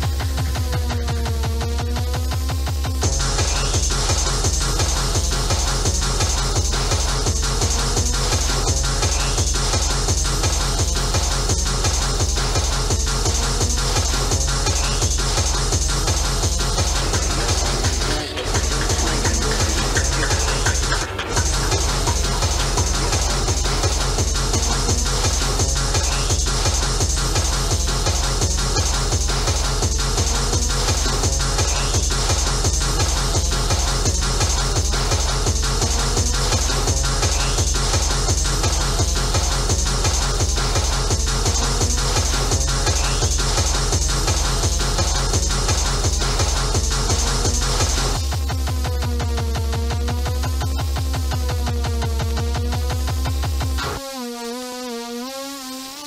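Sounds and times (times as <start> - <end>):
fast kick drum: 0.0 - 53.9.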